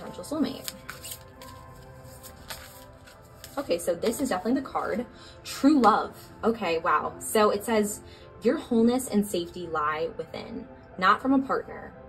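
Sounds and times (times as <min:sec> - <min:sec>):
quiet background music: 0:00.0 - 0:12.0
card drawn from deck: 0:00.5 - 0:04.5.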